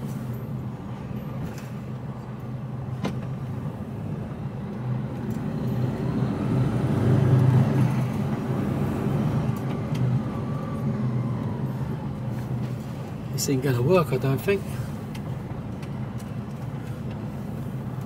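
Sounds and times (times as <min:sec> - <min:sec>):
faint engine whine: 0:00.0 - 0:18.0.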